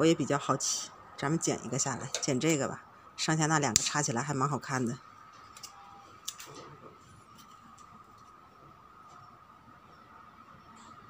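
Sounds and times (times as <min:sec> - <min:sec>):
faint steady tone: 0:04.4 - 0:11.0.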